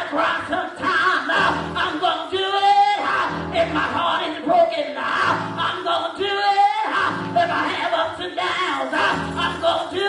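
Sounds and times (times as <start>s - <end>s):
woman singing gospel over pa: 0.0s - 10.0s.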